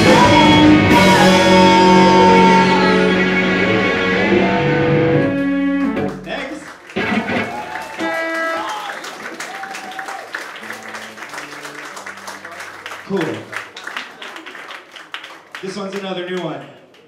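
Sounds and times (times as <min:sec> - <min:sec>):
live punk rock band: 0:00.0 - 0:06.2, 0:07.0 - 0:08.6
stray electric guitar notes: 0:00.0 - 0:06.4, 0:07.0 - 0:08.7
audience clapping: 0:05.3 - 0:17.0.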